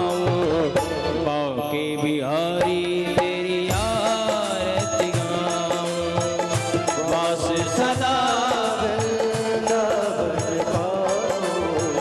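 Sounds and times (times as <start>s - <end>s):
person singing a melody: 0.0s - 12.0s
drum strokes: 2.6s - 12.0s.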